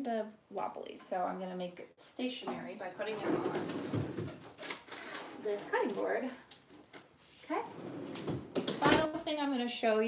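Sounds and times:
woman speaking: 0:00.0 - 0:04.0, 0:05.4 - 0:06.5, 0:07.4 - 0:07.7, 0:08.8 - 0:10.0.

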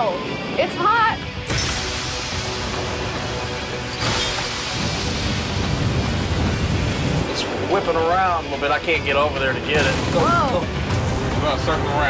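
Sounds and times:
background music: 0:00.0 - 0:12.0
fire roaring under water spray: 0:01.7 - 0:12.0.

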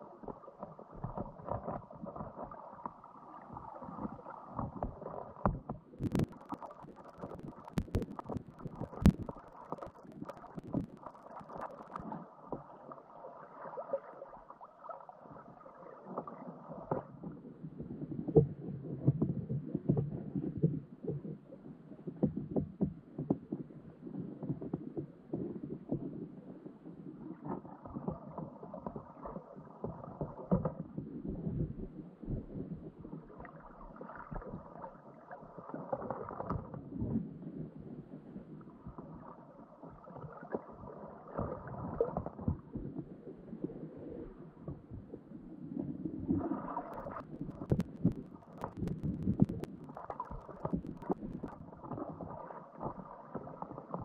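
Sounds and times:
underwater churning water: 0:00.0 - 0:54.0.

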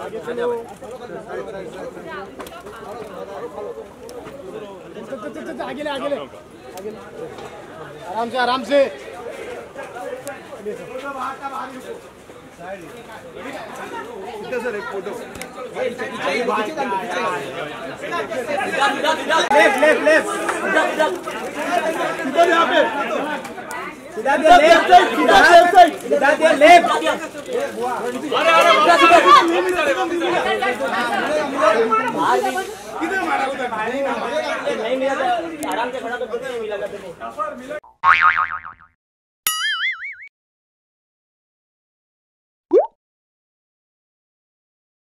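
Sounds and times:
crowd chatter: 0:00.0 - 0:37.8
cartoon boing: 0:37.8 - 0:40.3, 0:42.7 - 0:43.0.

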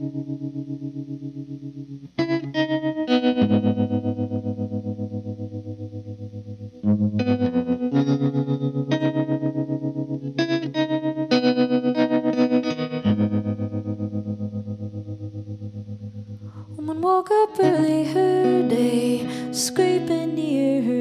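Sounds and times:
pulsing electric guitar chords: 0:00.0 - 0:21.0.

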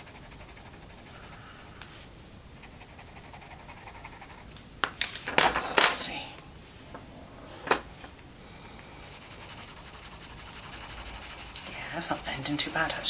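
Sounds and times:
pencil shading on paper: 0:00.0 - 0:01.4, 0:02.6 - 0:04.4, 0:09.0 - 0:13.0
scratchy pencil strokes: 0:00.0 - 0:01.4, 0:02.6 - 0:04.5, 0:09.0 - 0:13.0.

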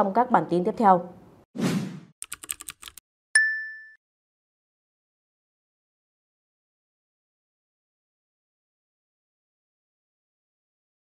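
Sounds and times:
keyboard typing clicks: 0:02.2 - 0:03.0
bright ding: 0:03.4 - 0:04.0.

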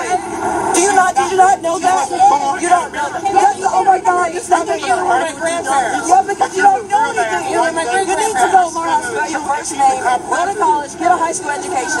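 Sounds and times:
crowd babble: 0:00.0 - 0:12.0
people talking over one another: 0:00.0 - 0:12.0.

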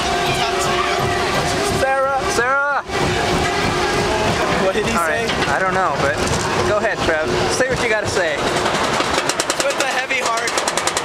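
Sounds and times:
roller coaster wheel rumble: 0:00.0 - 0:11.0.

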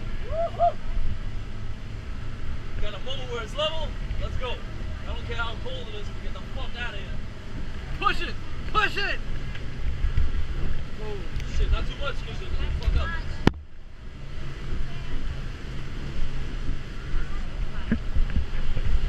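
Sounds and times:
people calling out: 0:00.0 - 0:00.9
boat outboard motor rumble: 0:00.0 - 0:19.0.

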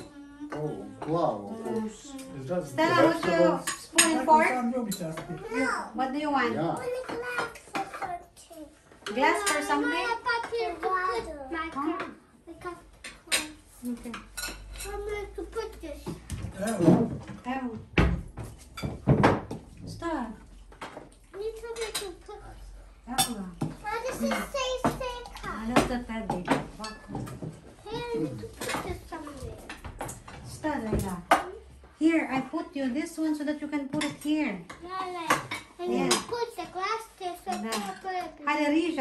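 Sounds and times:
adults and children talking: 0:00.0 - 0:17.7, 0:21.2 - 0:32.3, 0:34.0 - 0:39.0
cutlery clinking on plates: 0:02.9 - 0:05.4, 0:09.0 - 0:10.6, 0:13.0 - 0:15.0, 0:18.4 - 0:19.7, 0:20.6 - 0:22.3, 0:23.1 - 0:27.6.

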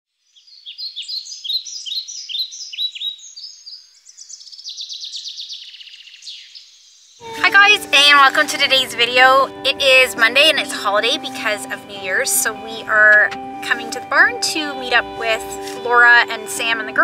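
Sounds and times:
bird chirping and trilling: 0:00.2 - 0:07.0
woman speaking: 0:07.2 - 0:17.0.

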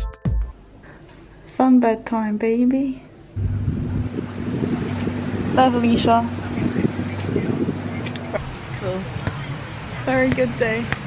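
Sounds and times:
steady low hum: 0:00.6 - 0:11.0
sea waves: 0:03.4 - 0:11.0
wind buffeting microphone: 0:03.4 - 0:11.0.

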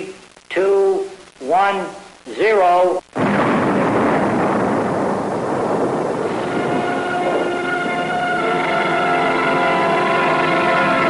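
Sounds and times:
explosion rumble: 0:03.1 - 0:10.5
sustained chord of steady tones: 0:06.3 - 0:11.0.

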